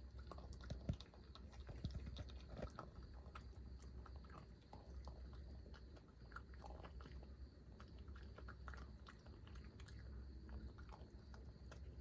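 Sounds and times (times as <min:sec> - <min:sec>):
raccoon crunching peanuts: 0:00.0 - 0:12.0.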